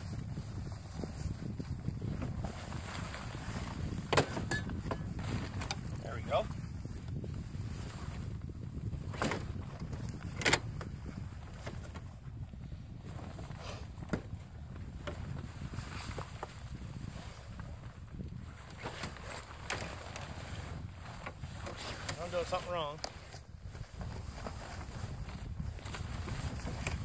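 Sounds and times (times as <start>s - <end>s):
wind noise on microphone: 0.0s - 27.0s
fabric rustling: 0.4s - 6.4s, 15.5s - 27.0s
sharp knocks of shelter frame: 4.0s - 5.8s.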